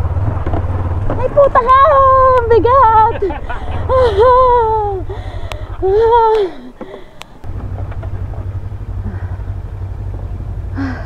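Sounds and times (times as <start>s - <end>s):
motorcycle engine running: 0.0s - 11.0s
person calling loudly: 5.8s - 6.7s.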